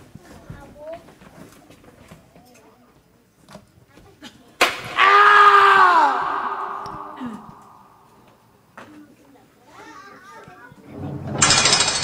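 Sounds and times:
sharp smack: 4.6 - 5.0
person screaming in pain: 5.0 - 8.0.

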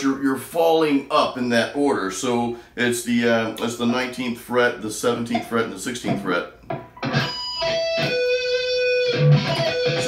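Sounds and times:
electric guitar sustained note: 7.0 - 10.0.

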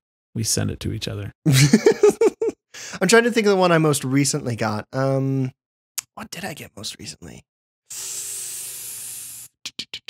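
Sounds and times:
steady hiss: 7.9 - 9.5.

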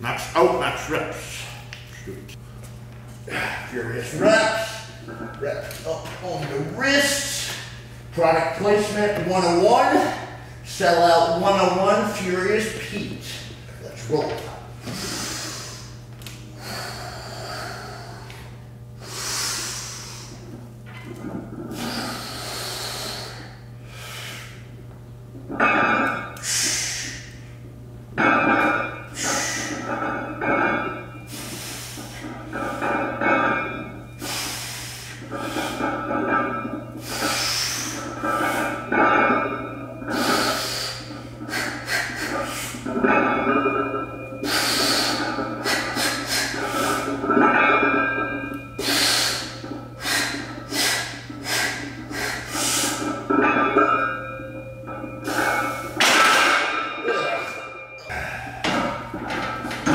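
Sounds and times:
man breathing forcefully: 58.1 - 58.9.

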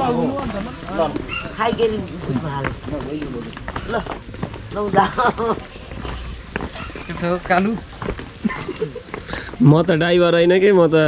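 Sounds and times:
footsteps on dirt path: 0.0 - 11.0
men talking: 0.0 - 11.0.

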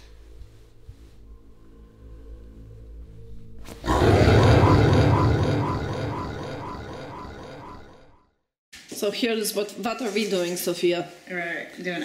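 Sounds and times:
loud musical sting with rumble: 3.8 - 8.2
low drone: 3.8 - 8.2.

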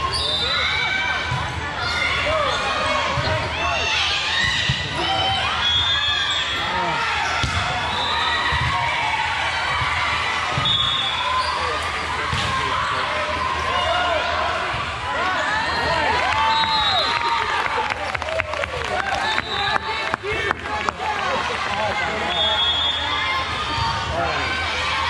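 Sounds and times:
balls struck and bouncing: 7.4 - 7.8.

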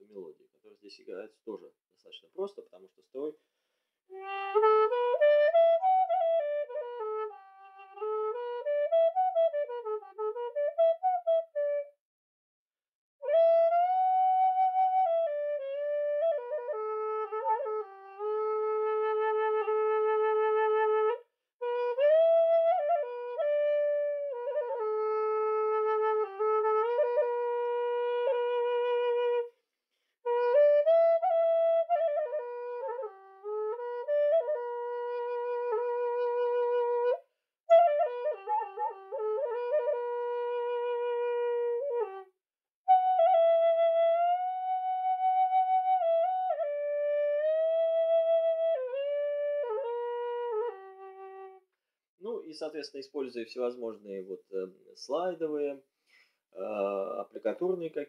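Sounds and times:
bamboo flute slow melody: 4.1 - 12.0, 13.2 - 29.6, 30.3 - 42.3, 42.9 - 51.6.

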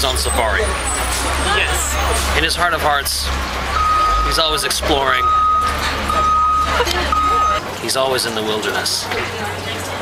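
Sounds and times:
low engine rumble: 0.0 - 7.8
vehicle reversing beeper: 3.8 - 7.6.

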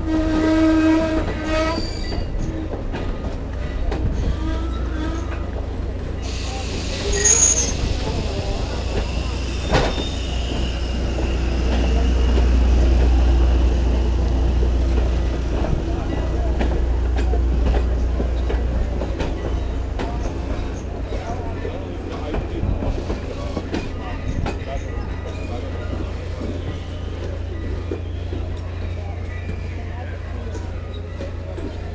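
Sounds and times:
train rumbling on rails: 0.0 - 31.9
high wheel squeal: 1.5 - 2.6, 6.2 - 12.3.

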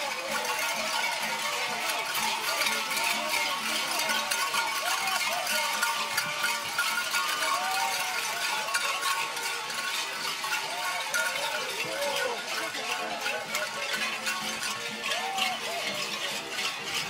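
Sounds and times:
metallic jingling and clinking: 0.0 - 17.0.

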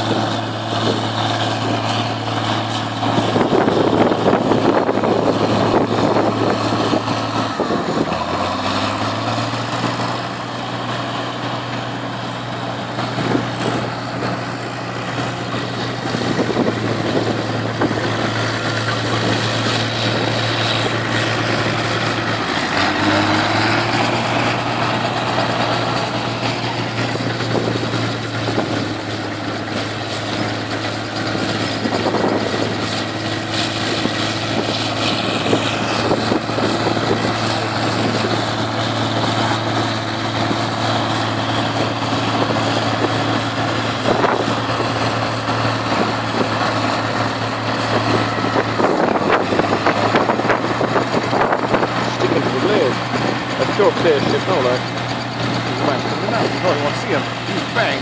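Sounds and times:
heavy diesel machinery running: 0.0 - 58.0.

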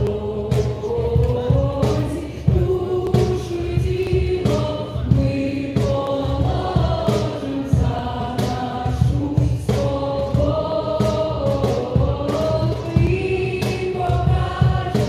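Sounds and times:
choir singing: 0.0 - 15.0
steady drum beat: 0.0 - 15.0.

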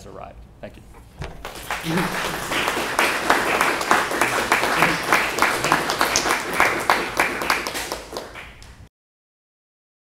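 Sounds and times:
audience applauding: 1.4 - 8.9
voices: 1.8 - 7.5.

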